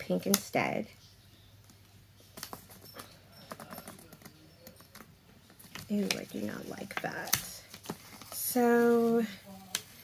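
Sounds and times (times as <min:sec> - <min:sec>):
sticker crinkling and tapping: 0:01.6 - 0:08.8.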